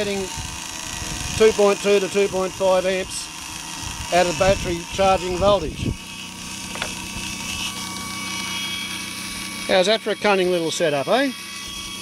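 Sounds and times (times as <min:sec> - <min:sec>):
electric motor humming: 0:00.0 - 0:12.0.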